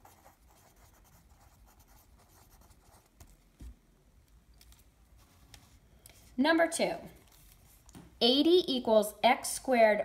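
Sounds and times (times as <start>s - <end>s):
pencil scratching on paper: 0.0s - 3.1s.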